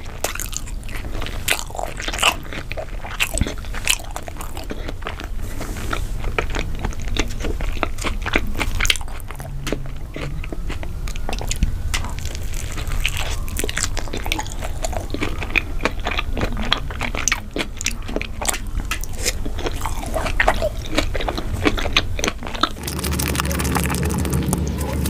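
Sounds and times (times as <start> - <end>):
chewing with wet mouth clicks: 0.0 - 25.0.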